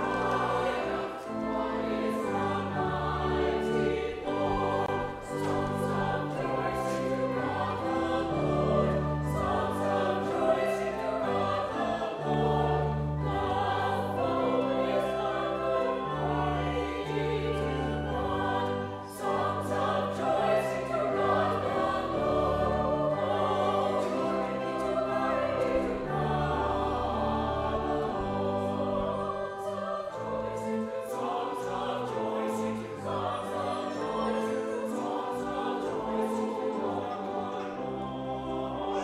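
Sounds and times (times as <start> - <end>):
choir singing: 0.0 - 39.0
pipe organ: 0.0 - 39.0.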